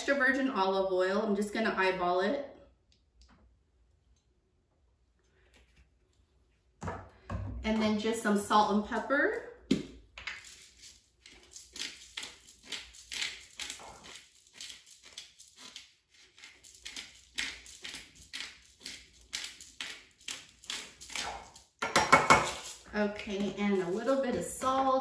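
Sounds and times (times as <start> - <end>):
pepper mill grinding: 10.2 - 24.9.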